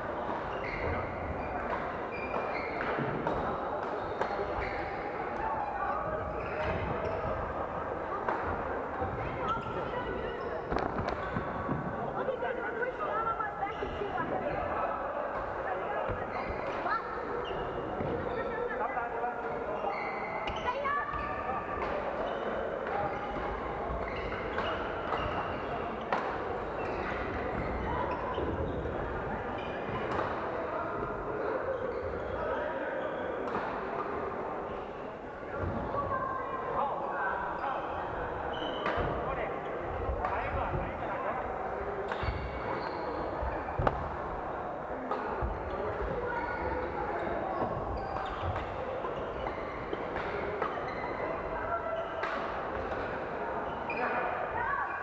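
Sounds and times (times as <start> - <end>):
indistinct chatter of players: 0.0 - 55.0.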